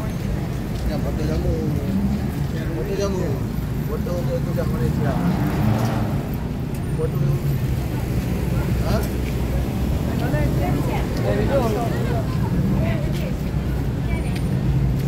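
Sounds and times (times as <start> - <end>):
passers-by talking: 0.0 - 15.0
road traffic rumble: 0.0 - 15.0.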